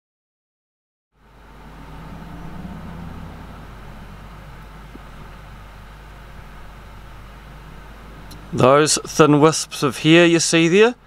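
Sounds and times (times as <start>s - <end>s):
low mechanical hum: 1.2s - 11.0s.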